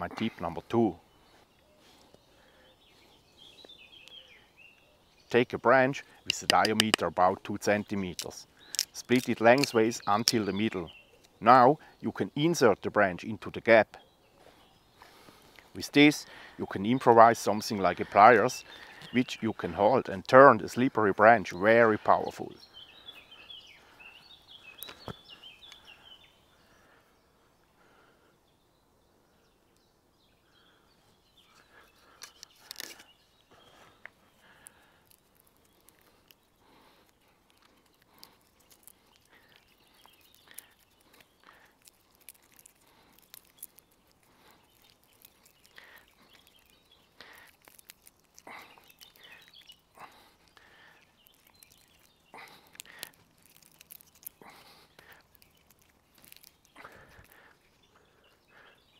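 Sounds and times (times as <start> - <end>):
birds chirping: 0.0 - 58.9
wood fibres crackling: 5.3 - 11.6, 31.4 - 58.7.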